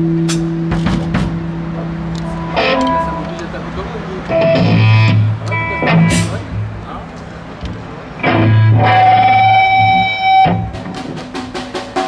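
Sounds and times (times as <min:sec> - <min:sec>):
held guitar note ringing: 0:00.0 - 0:06.5
electric guitar chords: 0:00.0 - 0:11.4.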